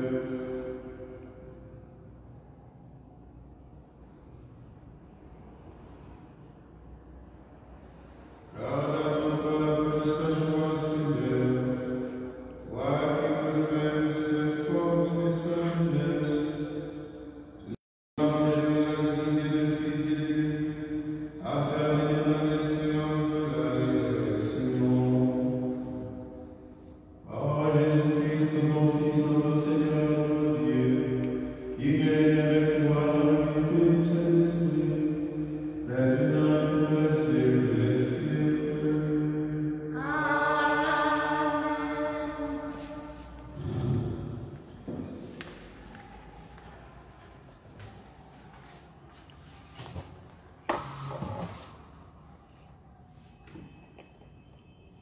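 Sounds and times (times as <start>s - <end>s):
man chanting prayer into microphone: 0.0s - 1.5s, 8.5s - 17.0s, 17.6s - 46.7s.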